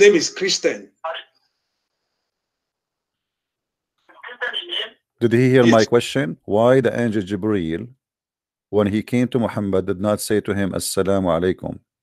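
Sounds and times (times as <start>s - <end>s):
person talking over telephone line: 4.2s - 6.0s.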